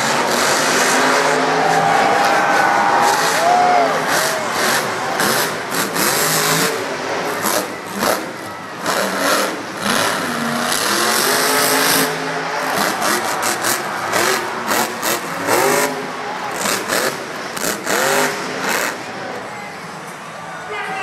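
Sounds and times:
monster truck engine revving: 0.0s - 20.1s.

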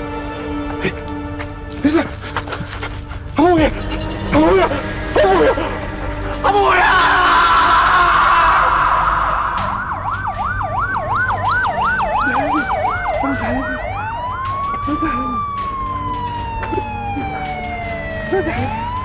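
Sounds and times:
ambulance siren: 2.3s - 19.0s.

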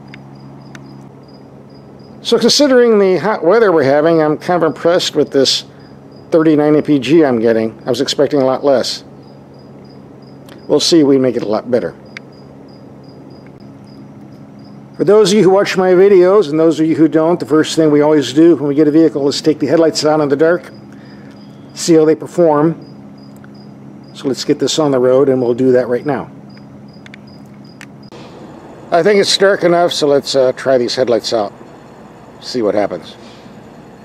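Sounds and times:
insect chirping: 0.0s - 16.4s, 17.2s - 28.2s.

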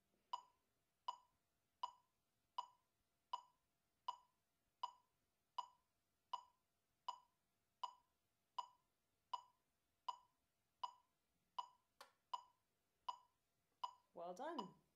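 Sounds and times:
metronome clicking: 0.4s - 2.0s, 10.1s - 11.0s, 11.6s - 14.8s.

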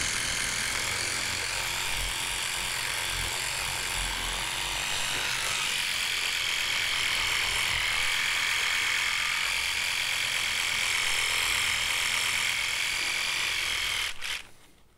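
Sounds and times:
electric toothbrush buzzing: 0.0s - 14.5s.

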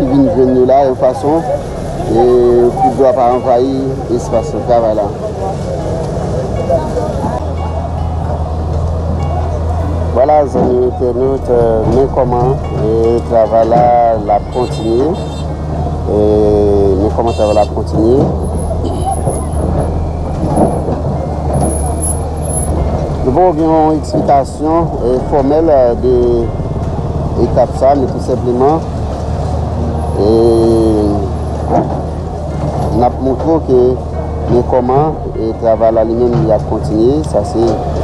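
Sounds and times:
people chattering: 0.0s - 26.7s
engine hum: 0.0s - 38.0s.

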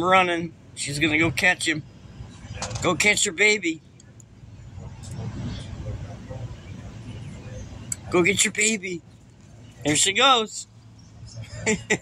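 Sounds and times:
passing vehicle rumble: 0.0s - 11.7s
faint voices: 0.1s - 11.9s.

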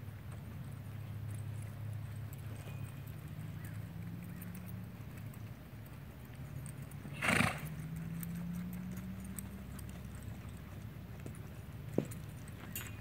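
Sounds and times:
horse hoofbeats on dirt: 0.0s - 13.0s
horse snorting: 7.1s - 7.8s.

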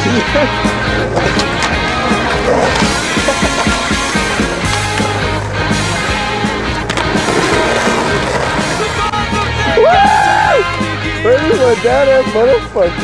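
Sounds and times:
skateboard wheels rolling on asphalt: 0.0s - 11.0s
rock song with vocals: 0.0s - 13.0s
skateboard clacking on pavement: 0.6s - 9.4s.

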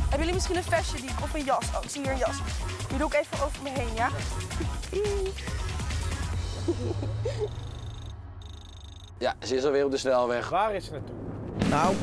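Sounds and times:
high electronic tones: 7.5s - 9.1s.

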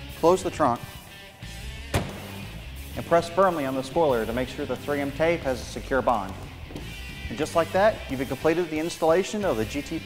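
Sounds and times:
quiet background music: 0.0s - 10.0s
car trunk lid slamming: 1.9s - 2.5s.

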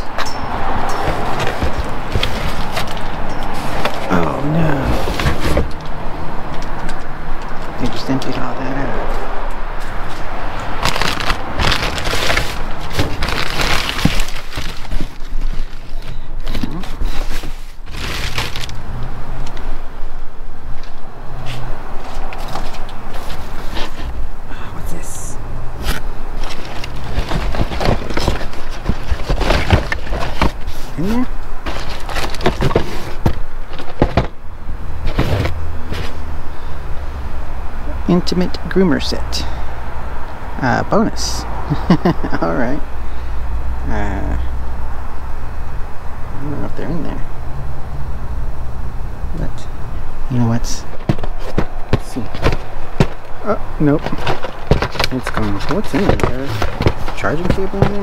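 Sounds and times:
boxes and jugs clattering: 0.0s - 4.2s, 4.8s - 5.9s, 10.8s - 18.8s, 26.4s - 34.4s, 35.0s - 36.2s, 50.8s - 58.0s
plastic bags and boxes rustling: 0.3s - 6.0s, 10.1s - 18.9s, 21.5s - 24.3s, 25.8s - 36.2s, 50.6s - 58.0s.

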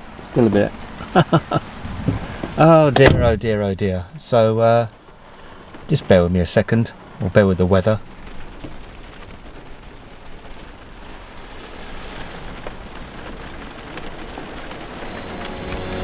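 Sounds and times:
rain on car roof: 0.0s - 16.0s.

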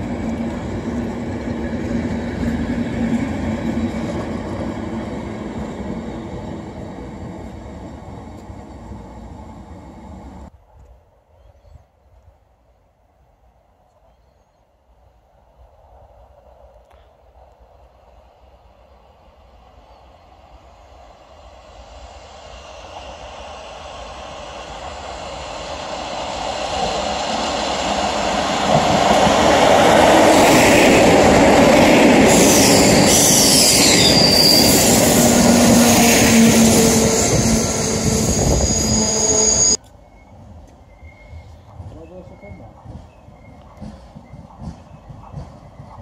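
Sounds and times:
train wheels rushing on rail: 0.0s - 11.0s, 15.6s - 46.0s
high wheel squeals: 32.3s - 39.8s.

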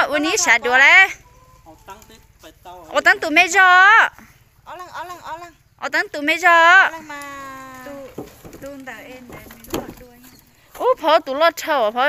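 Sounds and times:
rooster crowing: 0.4s - 2.8s.

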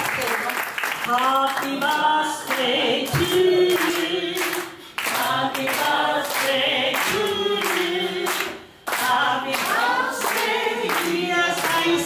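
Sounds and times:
hands clapping along: 0.0s - 12.0s
group singing unaccompanied: 1.6s - 12.0s
woman singing into microphone: 1.7s - 4.6s.

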